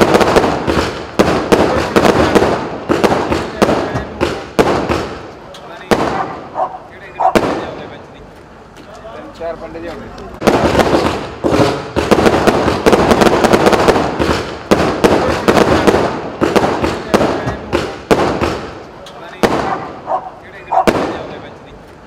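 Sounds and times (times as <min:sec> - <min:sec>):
fireworks bangs and crackles: 0:00.0 - 0:08.6, 0:09.4 - 0:22.0.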